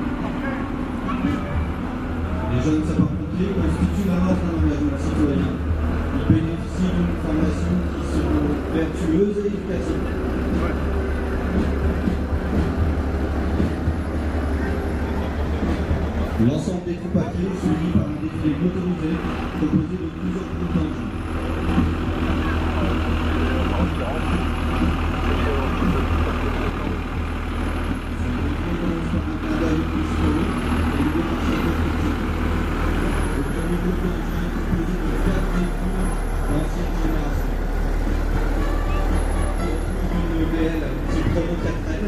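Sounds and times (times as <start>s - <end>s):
diesel truck engine driving past: 0.0s - 42.0s.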